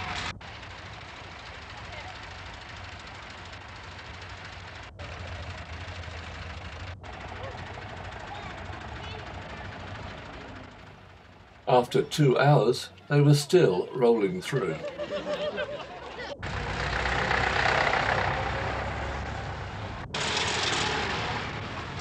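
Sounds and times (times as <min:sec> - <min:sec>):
tractors and vehicles running past: 0:00.0 - 0:22.0
indistinct crowd voices: 0:04.9 - 0:16.5.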